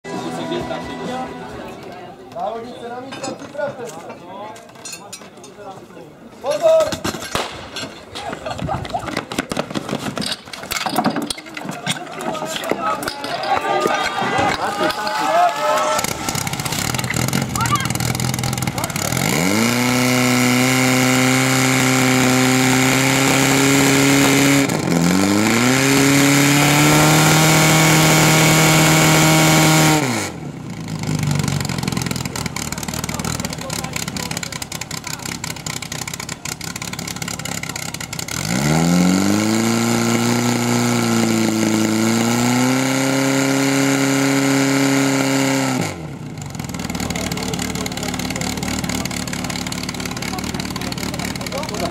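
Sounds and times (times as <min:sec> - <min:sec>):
pump engine revving: 0:15.7 - 0:51.9.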